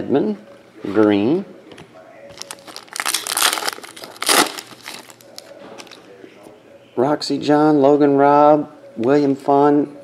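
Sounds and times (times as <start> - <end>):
foil wrapper crinkling and tearing: 2.3 - 6.0.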